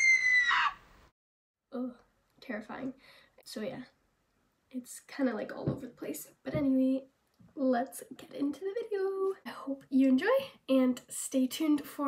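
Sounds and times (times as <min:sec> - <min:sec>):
high-pitched scream: 0:00.0 - 0:00.9.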